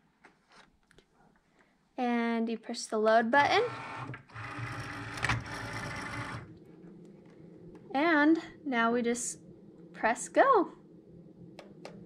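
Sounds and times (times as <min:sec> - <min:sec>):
feed motor whirring: 0:03.4 - 0:06.6
quiet motor hum: 0:03.4 - 0:12.0.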